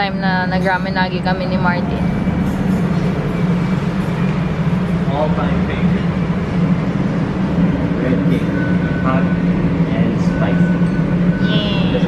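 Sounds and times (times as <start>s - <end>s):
constant hum: 0.0s - 12.0s.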